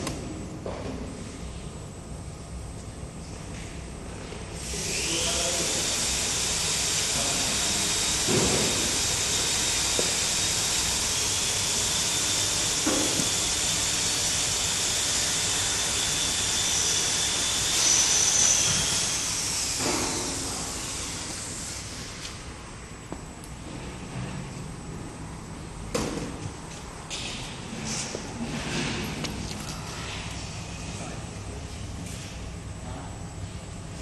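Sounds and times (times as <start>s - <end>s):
machine hiss and whine: 0.0s - 34.0s.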